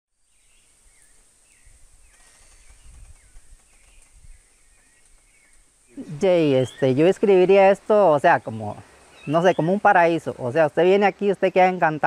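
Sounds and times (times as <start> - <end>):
low wind rumble: 0.6 - 7.8.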